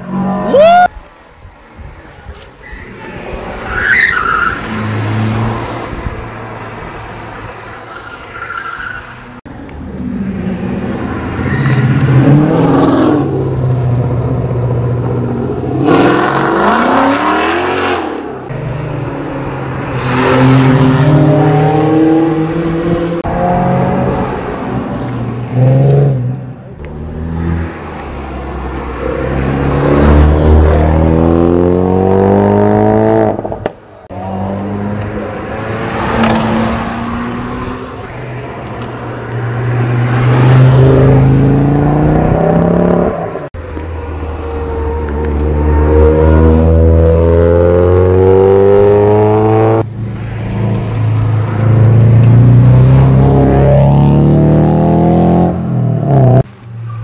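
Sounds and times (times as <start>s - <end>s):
cars accelerating past: 9.9s - 56.5s.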